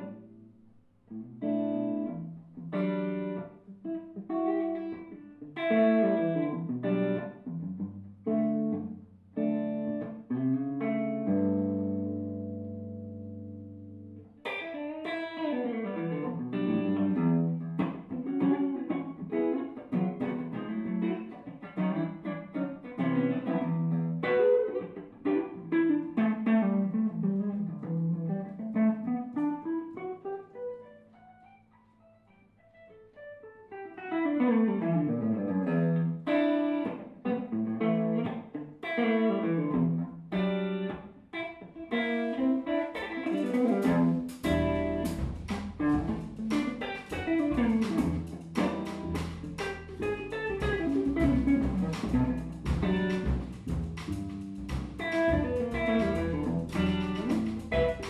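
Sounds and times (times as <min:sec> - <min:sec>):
electric jazz guitar solo: 0:00.0 - 0:58.0.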